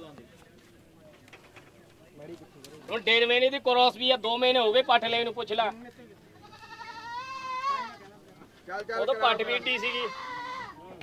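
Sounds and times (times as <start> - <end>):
goat bleating: 6.3 - 8.1, 9.2 - 10.9.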